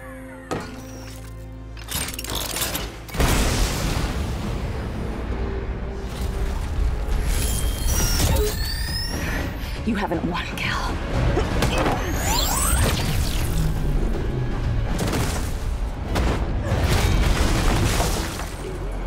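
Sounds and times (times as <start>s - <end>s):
dramatic orchestral score: 0.2s - 19.0s.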